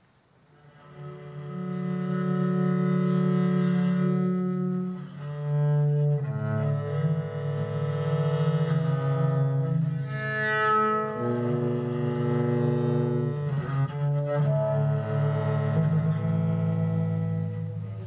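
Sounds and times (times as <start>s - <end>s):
bowed viola da gamba chords: 0.5s - 18.0s.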